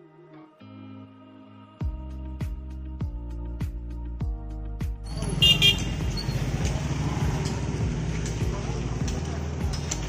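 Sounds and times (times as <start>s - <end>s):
vehicle horn toots: 5.1s - 6.5s
street traffic engines: 5.1s - 10.0s
people talking: 6.4s - 10.0s.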